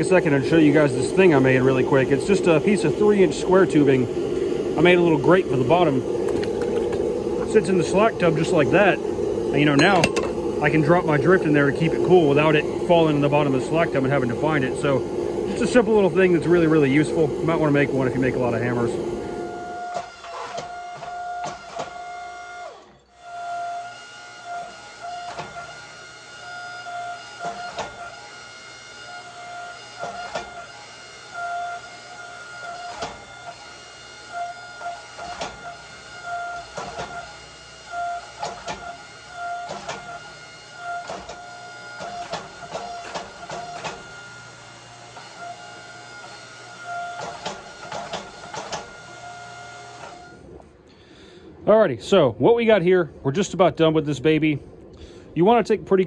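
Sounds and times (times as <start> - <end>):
power hammer humming: 0.0 - 20.2
hammer dies striking hot steel: 9.7 - 10.4.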